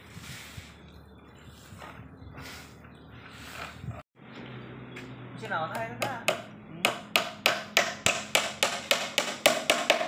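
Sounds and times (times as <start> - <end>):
hammer tapping on wood: 5.7 - 10.0.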